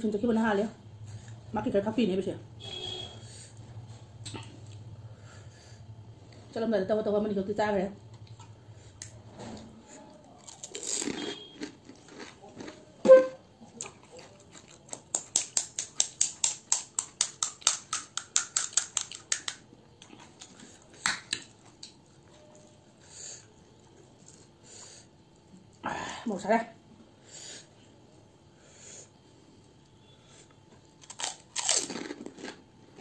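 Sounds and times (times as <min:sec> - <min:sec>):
crisp shells crunching when chewed: 0:10.2 - 0:13.0, 0:13.7 - 0:22.0, 0:31.0 - 0:33.0.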